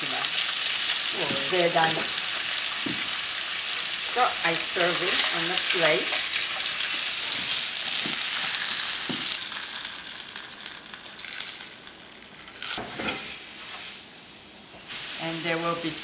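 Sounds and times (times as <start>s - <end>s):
oil sizzling in a frying pan: 0.0s - 16.0s.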